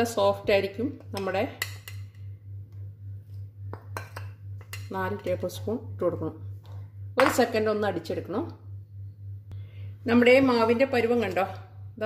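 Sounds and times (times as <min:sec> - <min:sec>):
steady low hum: 0:00.0 - 0:12.0
metal spoon clinking on dishes: 0:01.2 - 0:02.2.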